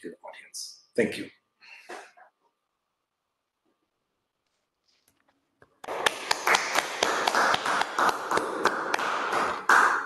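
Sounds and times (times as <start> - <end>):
small group applauding: 5.8 - 10.0.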